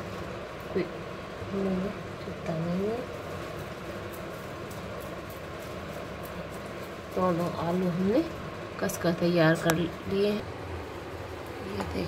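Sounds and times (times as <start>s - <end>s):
background hum: 0.0s - 12.0s.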